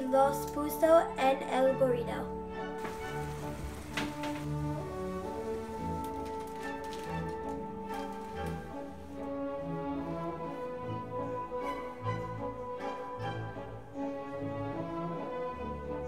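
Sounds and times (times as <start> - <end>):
instrumental music with sustained notes: 0.0 - 16.0.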